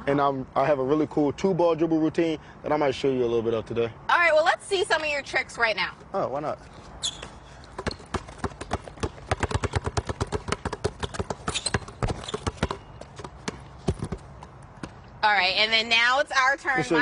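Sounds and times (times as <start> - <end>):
basketballs bouncing on paving: 7.0 - 16.1.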